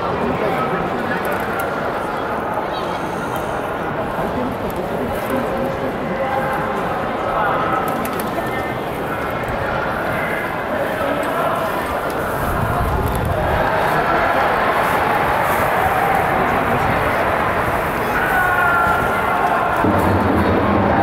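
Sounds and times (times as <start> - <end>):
crowd voices held: 0.0 - 21.0
stadium crowd murmur: 0.0 - 21.0.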